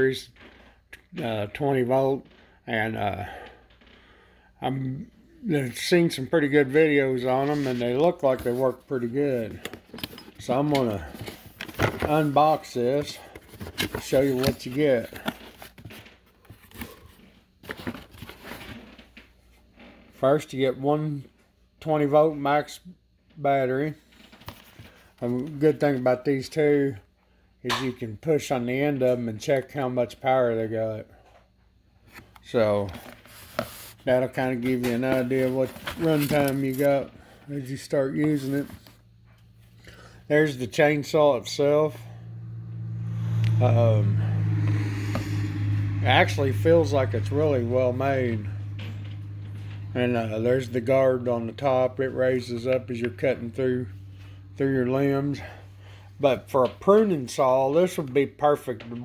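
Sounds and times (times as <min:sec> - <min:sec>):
low machine hum: 0:00.1 - 0:59.0
cardboard packaging rustling: 0:07.4 - 0:18.9, 0:32.1 - 0:37.1.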